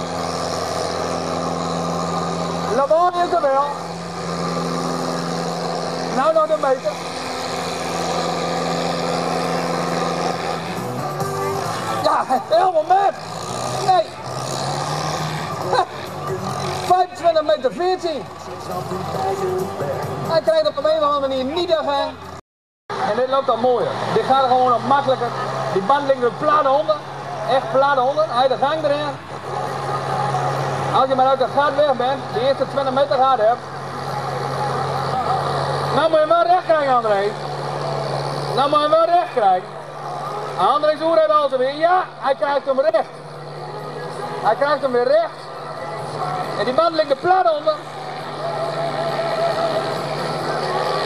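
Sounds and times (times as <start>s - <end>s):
diesel tractor engine under load: 0.0s - 51.0s.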